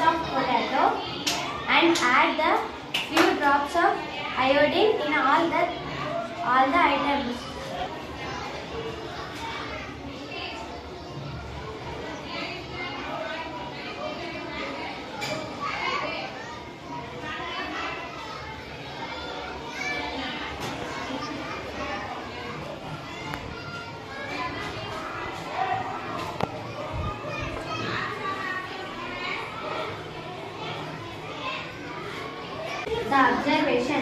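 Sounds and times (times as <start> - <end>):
children talking and calling: 0.0 - 34.0.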